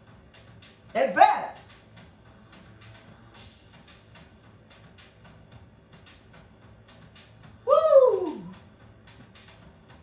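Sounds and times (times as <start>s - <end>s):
background music with steady beat: 0.0s - 10.0s
woman whooping: 7.6s - 8.6s.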